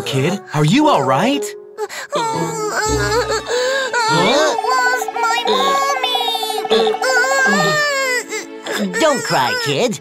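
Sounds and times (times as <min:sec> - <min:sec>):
background music: 0:00.0 - 0:10.0
child crying: 0:01.8 - 0:09.8.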